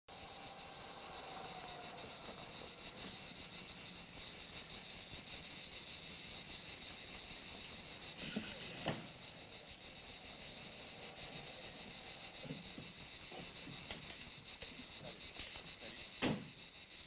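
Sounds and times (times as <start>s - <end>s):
cicadas buzzing: 0.0s - 17.0s
faint car engine: 0.1s - 15.2s.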